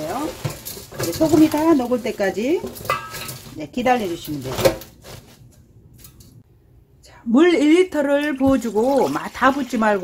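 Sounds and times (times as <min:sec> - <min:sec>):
rustling greens in metal bowl: 0:00.0 - 0:06.4, 0:08.2 - 0:10.0.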